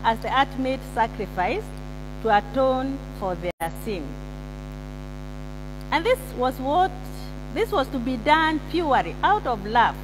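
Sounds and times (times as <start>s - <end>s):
woman speaking: 0.0s - 4.2s, 5.9s - 10.0s
electrical mains hum: 0.0s - 10.0s.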